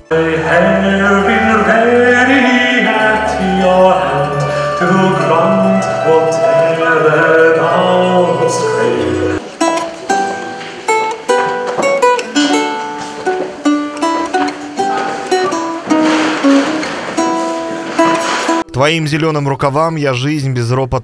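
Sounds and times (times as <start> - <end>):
lute plucked notes and chords: 0.0 - 18.6
early music ensemble: 0.0 - 18.8.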